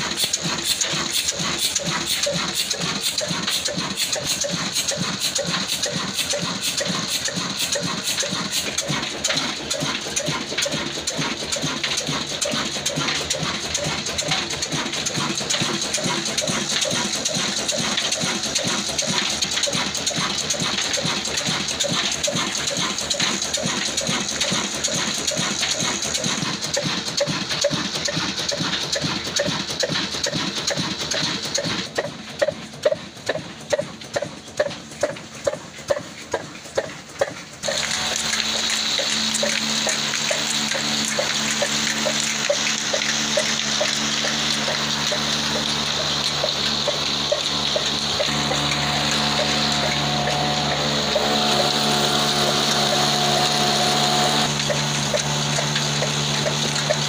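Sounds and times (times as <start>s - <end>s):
diesel engine knocking: 0.0s - 57.0s
loud exhaust puffs: 0.0s - 57.0s.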